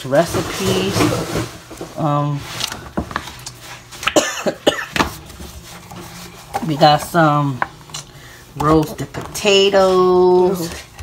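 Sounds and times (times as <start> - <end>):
woman coughing: 4.1 - 5.0
papers shifting on table: 4.9 - 11.0.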